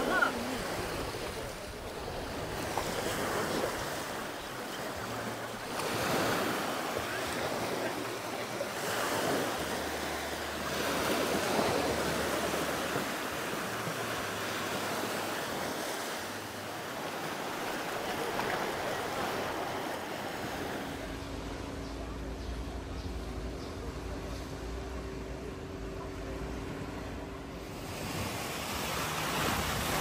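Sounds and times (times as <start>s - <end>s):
small waves breaking on shore: 0.0s - 30.0s.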